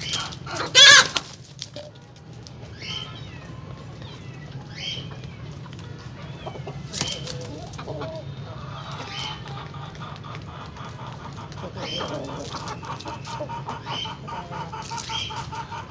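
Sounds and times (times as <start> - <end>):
chickens giving short high calls: 0.0 - 15.9.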